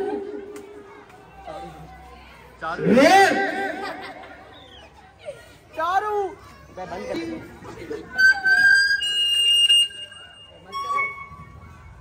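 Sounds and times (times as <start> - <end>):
microphone feedback whistle: 8.2 - 12.0.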